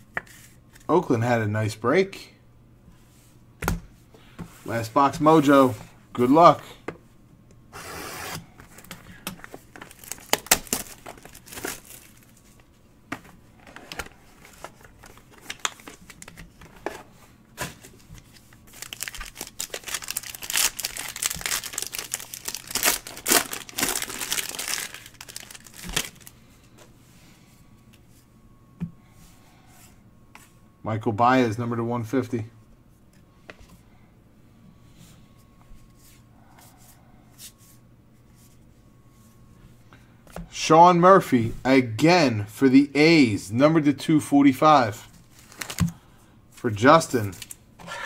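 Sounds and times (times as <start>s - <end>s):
wrapper crinkling and tearing: 9.7s - 12.4s, 14.4s - 16.4s, 18.2s - 26.3s, 45.3s - 45.9s, 47.2s - 47.6s.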